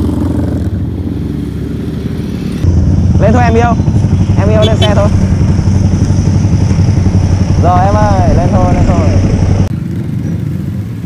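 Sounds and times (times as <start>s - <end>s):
motorcycle engine idling: 2.7s - 11.0s.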